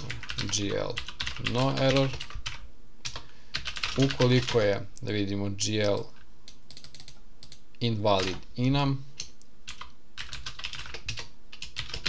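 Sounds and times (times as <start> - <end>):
computer keyboard typing: 0.0 - 4.8, 5.8 - 7.6, 9.2 - 12.0.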